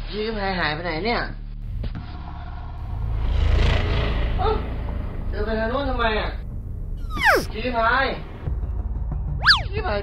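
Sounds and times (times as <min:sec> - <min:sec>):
short rising vocal squeak: 0:07.0 - 0:07.5, 0:09.4 - 0:09.7.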